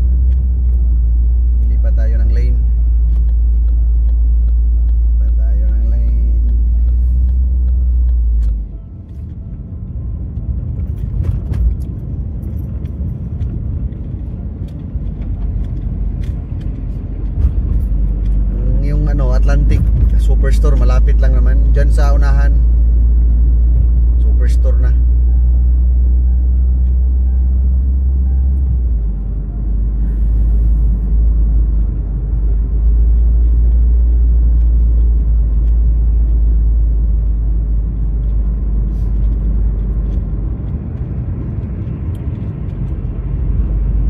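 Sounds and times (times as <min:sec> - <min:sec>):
car road rumble from inside: 0:00.0 - 0:44.0.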